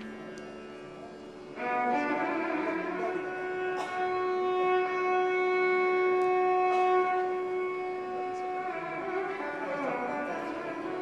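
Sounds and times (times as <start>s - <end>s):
violin long bowed note: 0.0s - 11.0s.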